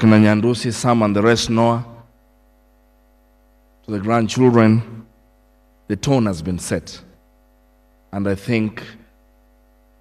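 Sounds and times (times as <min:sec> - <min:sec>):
man speaking: 0:00.0 - 0:02.1, 0:03.9 - 0:05.1, 0:05.9 - 0:07.2, 0:08.1 - 0:09.1
faint electrical mains hum: 0:00.0 - 0:10.0.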